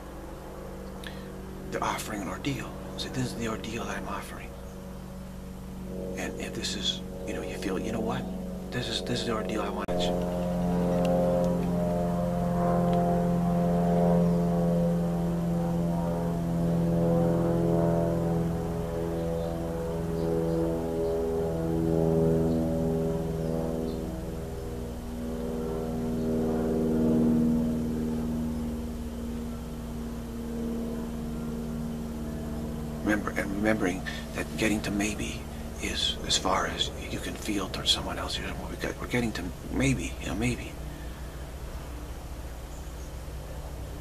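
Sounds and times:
sustained drone of held tones: 0:00.0 - 0:44.0.

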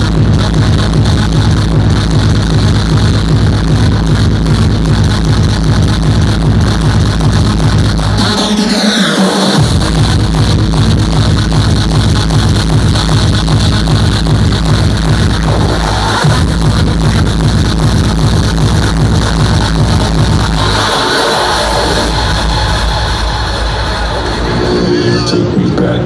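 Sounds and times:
heavy kick drum beat: 0:00.0 - 0:08.7, 0:09.4 - 0:24.9
hardstyle dance music: 0:00.0 - 0:26.0.

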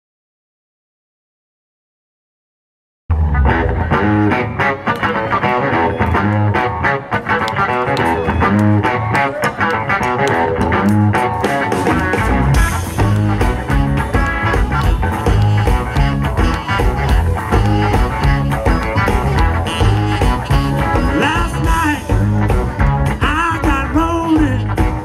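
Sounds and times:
bass guitar: 0:03.1 - 0:25.0
electric guitar: 0:03.1 - 0:25.0
live blues band: 0:03.1 - 0:25.0
steady drum beat: 0:11.2 - 0:25.0
saxophone: 0:11.9 - 0:23.0.

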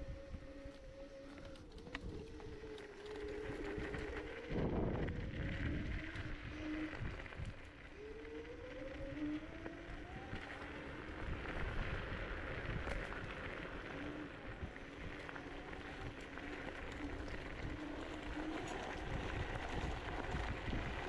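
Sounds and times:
electric scooter motor whining: 0:00.0 - 0:21.0
wind on microphone: 0:00.0 - 0:21.0
tyres rumbling on gravel: 0:01.2 - 0:21.0.

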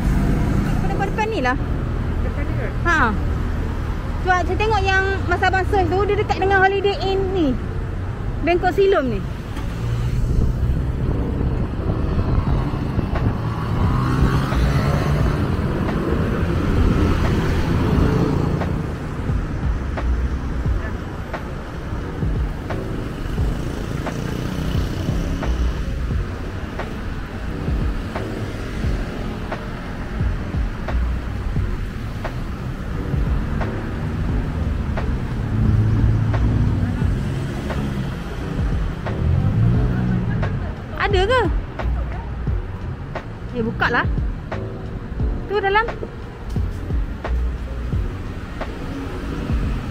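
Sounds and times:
car engines passing: 0:00.0 - 0:49.9.

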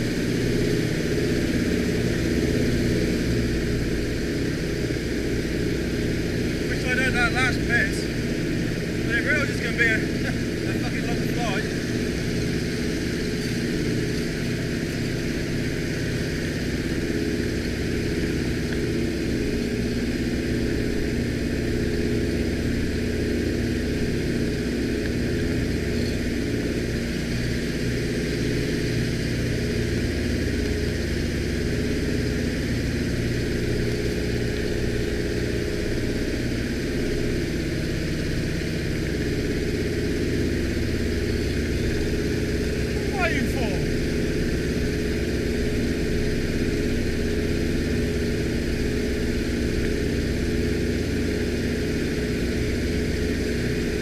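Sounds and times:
propeller plane engines droning: 0:00.0 - 0:54.0.

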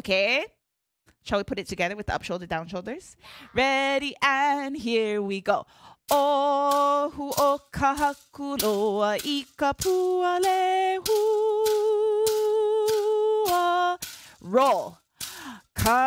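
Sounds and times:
woman singing unaccompanied: 0:03.5 - 0:16.0
split bamboo clacks: 0:06.1 - 0:14.2.

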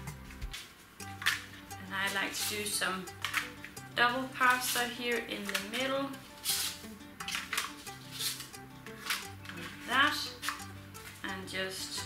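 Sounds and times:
light background music: 0:00.0 - 0:12.0
pasta sheets clattering in a dish: 0:06.4 - 0:11.3.

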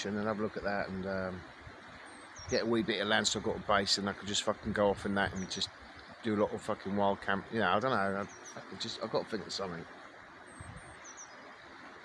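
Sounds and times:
faint outdoor hiss: 0:00.0 - 0:12.0
small bird chirping: 0:10.5 - 0:11.5.

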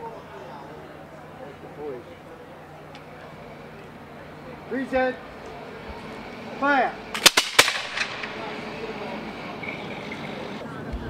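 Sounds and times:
musket shots with echo: 0:07.1 - 0:08.8.

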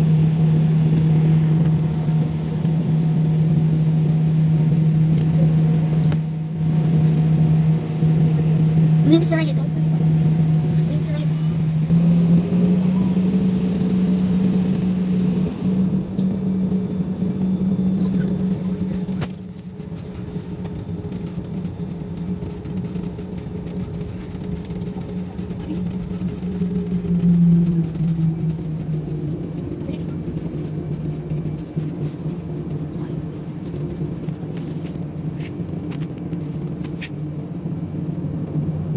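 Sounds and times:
jet engines hum in cabin: 0:00.0 - 0:38.9.

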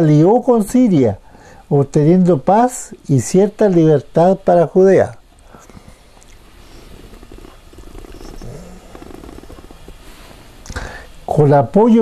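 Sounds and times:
man's creaky hesitation sound: 0:06.6 - 0:10.1.

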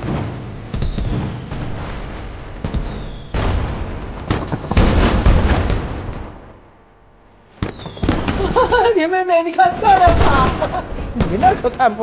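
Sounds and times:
crackling firework bursts: 0:00.0 - 0:06.5, 0:07.5 - 0:08.8
firework bang: 0:00.0 - 0:06.7, 0:07.5 - 0:08.8
falling whistle: 0:07.6 - 0:08.2.

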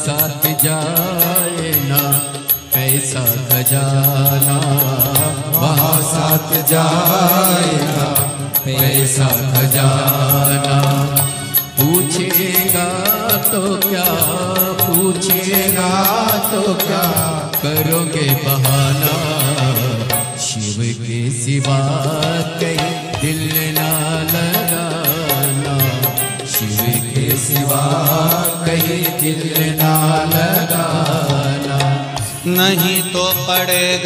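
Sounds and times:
percussion beat: 0:00.0 - 0:34.0
wavering melodic line: 0:23.3 - 0:31.6.

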